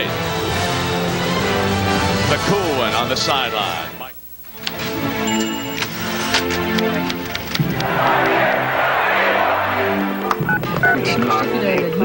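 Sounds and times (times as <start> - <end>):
music: 0.0 - 12.0
many voices: 7.0 - 12.0
telephone keypad beeps: 10.2 - 11.6.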